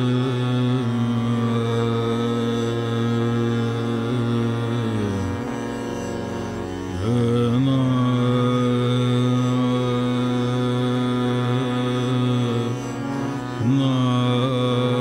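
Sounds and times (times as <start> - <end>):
man singing classical vocals: 0.0 - 15.0
steady drone: 0.0 - 15.0.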